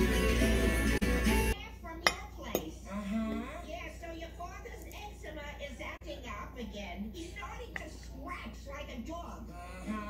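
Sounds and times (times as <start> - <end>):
music: 0.0 - 1.6.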